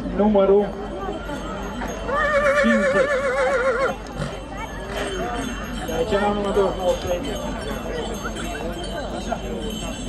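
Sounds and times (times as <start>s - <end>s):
horse whinnying: 2.1s - 4.3s.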